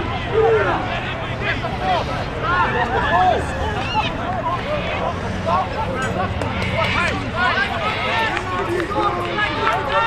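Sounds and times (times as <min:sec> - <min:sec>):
voices calling and shouting: 0:00.0 - 0:10.0.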